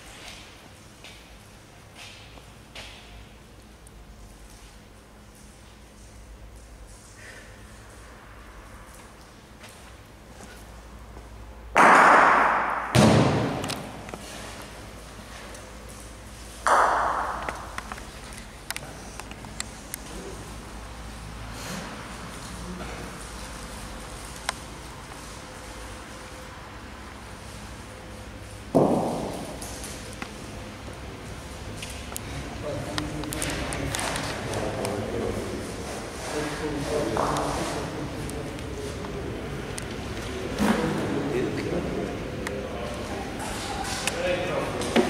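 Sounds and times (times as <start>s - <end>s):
indistinct talk in echoing hall: 31.0s - 45.0s.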